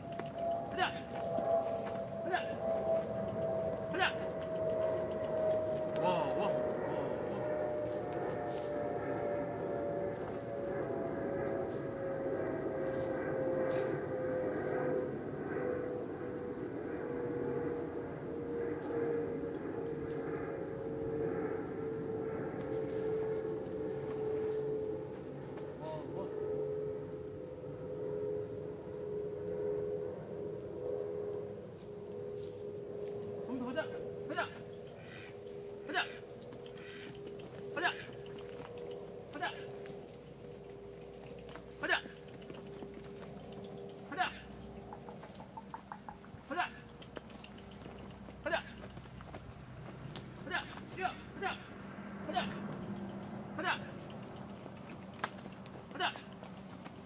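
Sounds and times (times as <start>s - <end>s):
machine hum sinking in pitch: 0.0s - 57.0s.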